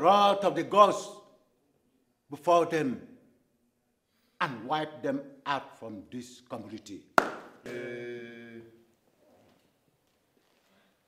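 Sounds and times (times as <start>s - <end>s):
held vocal note: 7.6s - 8.9s.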